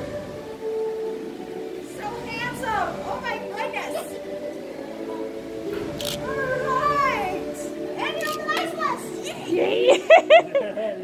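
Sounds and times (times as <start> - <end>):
children calling out: 6.0 - 9.8.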